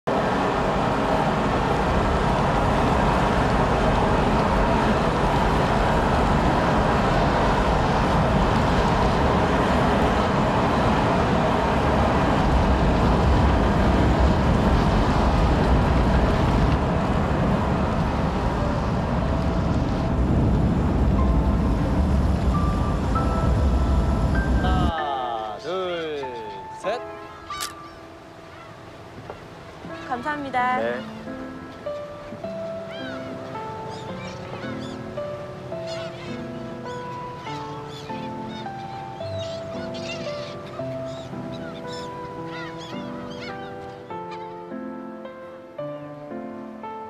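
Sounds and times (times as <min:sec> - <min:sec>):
loud low rumbling: 0:00.1 - 0:25.0.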